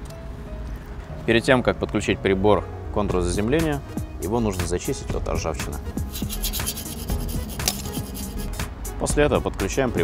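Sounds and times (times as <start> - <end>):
background music: 0.0 - 10.0
hand file scraping rusty steel: 6.0 - 8.7.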